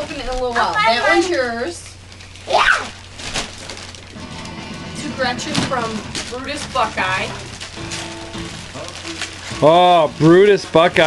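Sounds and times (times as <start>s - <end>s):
wrapping paper crinkling: 0.0s - 11.0s
faint background music: 4.1s - 11.0s.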